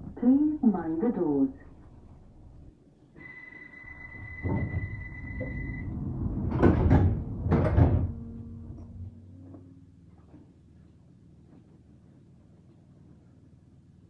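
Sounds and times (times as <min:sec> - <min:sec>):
faint low hum: 0:00.0 - 0:14.0
high door warning tone: 0:03.2 - 0:09.1
sliding doors thudding shut: 0:04.3 - 0:08.4.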